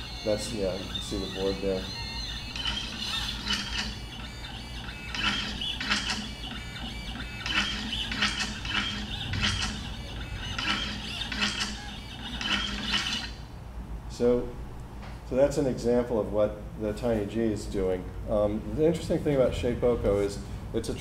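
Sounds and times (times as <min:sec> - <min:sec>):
stepper motors whining: 0:00.0 - 0:13.4.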